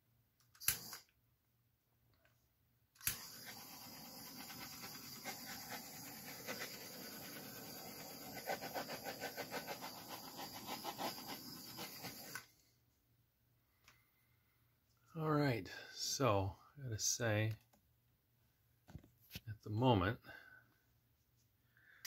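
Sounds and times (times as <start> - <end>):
butane torch hissing: 3.0 - 12.4.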